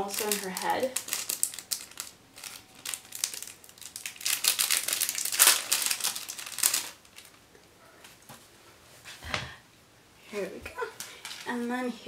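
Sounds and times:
plastic packet crinkling: 0.0 - 7.5.

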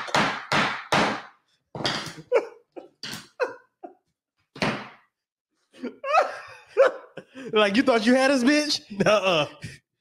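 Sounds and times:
hand slapping a desk: 0.0 - 2.2, 4.6 - 5.1
hearty laughter: 2.2 - 4.1, 5.7 - 7.7.

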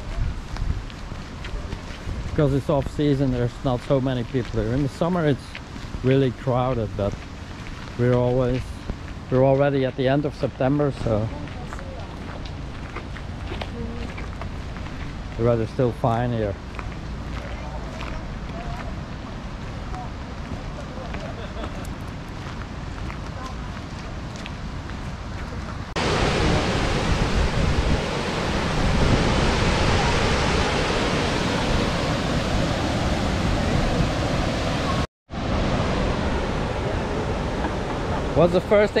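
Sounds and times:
outdoor ambience: 0.0 - 39.0
waterfall rushing: 25.9 - 39.0.

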